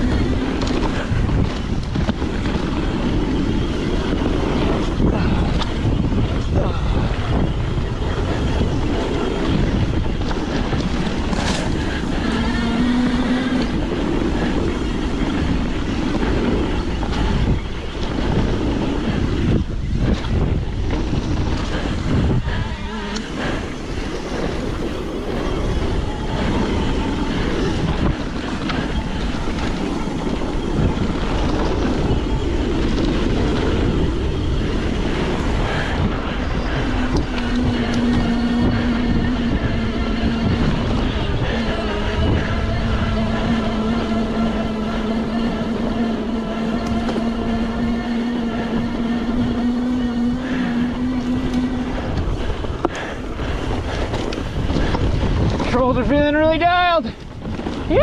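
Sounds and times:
bike tyres rolling over dirt: 0.0 - 58.0
wind buffeting microphone: 0.0 - 58.0
electric motor whine: 20.5 - 55.6.

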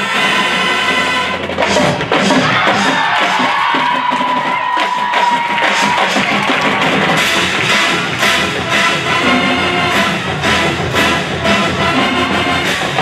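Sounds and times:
drum strikes: 0.0 - 13.0
marching band playing: 0.0 - 13.0.

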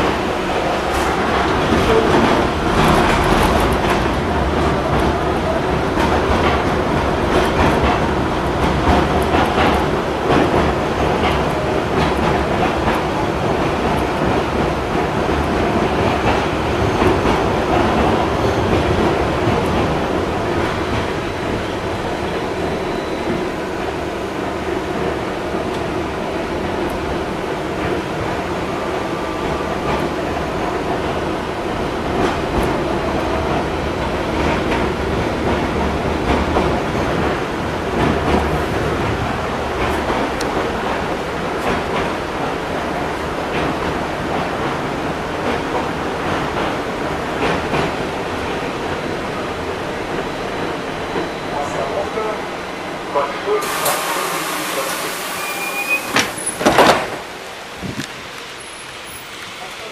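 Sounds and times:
tram wheels rumbling on rails: 0.0 - 59.9.

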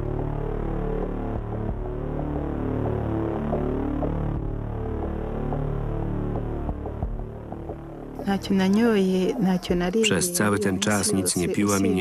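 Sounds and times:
low droning background music: 0.0 - 12.0.

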